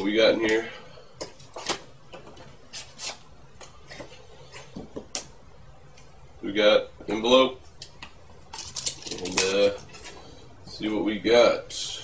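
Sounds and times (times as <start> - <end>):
paper envelope rustling: 8.6 - 10.3.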